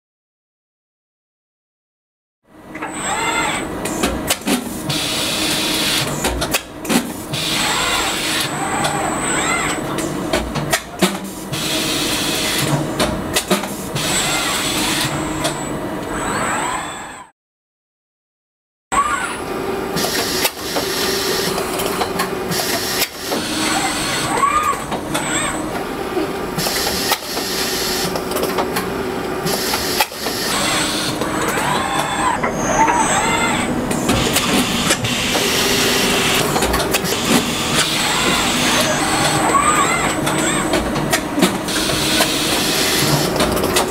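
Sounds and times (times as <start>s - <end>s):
machine hum with servo whine: 2.5s - 17.3s, 18.9s - 43.9s.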